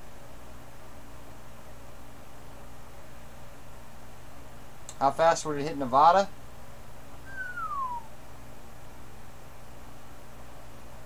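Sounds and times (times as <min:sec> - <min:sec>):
low electrical hum: 0:00.0 - 0:11.0
person whistling falling note: 0:07.3 - 0:08.1.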